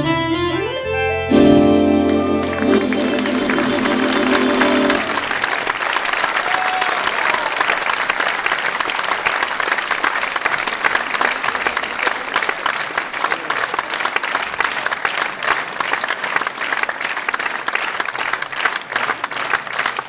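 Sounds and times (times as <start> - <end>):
audience applause: 2.0 - 20.0.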